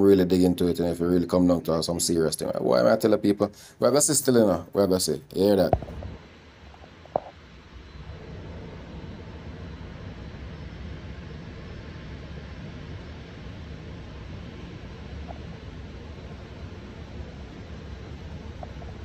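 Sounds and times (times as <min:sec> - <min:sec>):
low rumble with hiss: 0:00.0 - 0:19.0.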